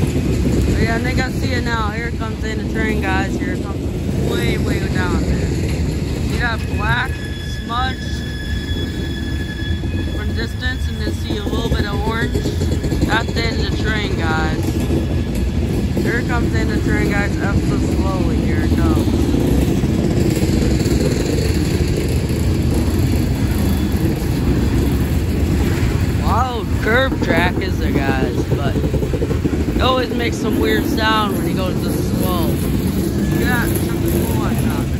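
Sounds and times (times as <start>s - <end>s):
train wheels rumbling on rails: 0.0s - 34.9s
high-pitched wheel squeal: 4.3s - 16.2s, 18.2s - 28.5s.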